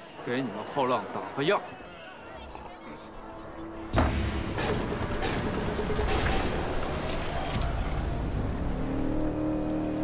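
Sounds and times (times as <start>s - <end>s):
wind and blowing sand rumble: 4.0s - 10.0s.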